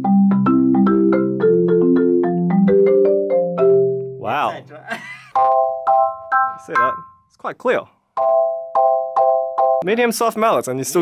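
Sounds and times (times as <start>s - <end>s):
marimba notes: 0.0s - 7.4s, 8.2s - 9.8s
person exclaiming: 4.2s - 5.1s.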